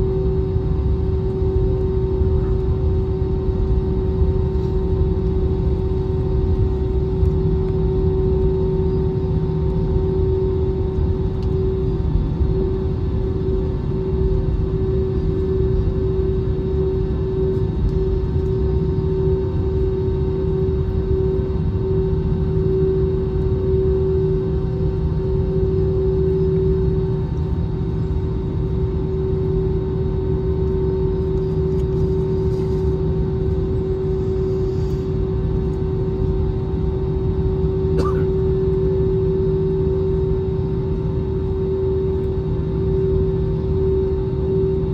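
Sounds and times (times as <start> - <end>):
jet engine cabin rumble: 0.0 - 44.9.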